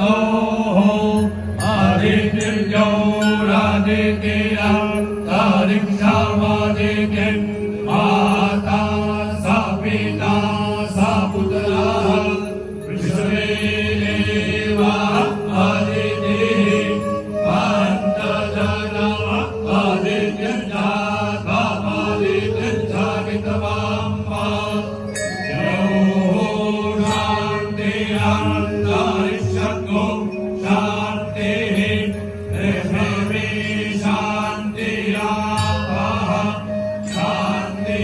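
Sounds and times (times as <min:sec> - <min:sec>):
men chanting through microphones: 0:00.0 - 0:38.0.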